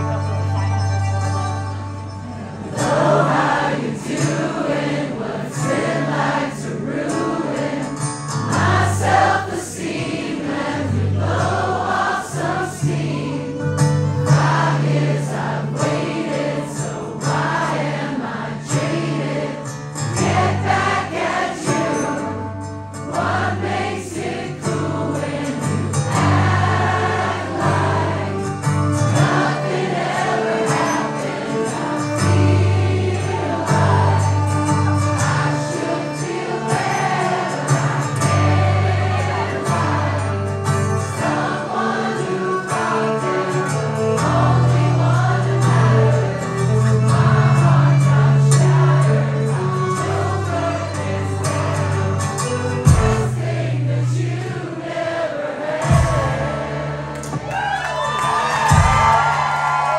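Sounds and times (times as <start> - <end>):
acoustic guitar strumming: 0.0 - 57.5, 58.6 - 59.9
bowed violins: 23.2 - 55.1.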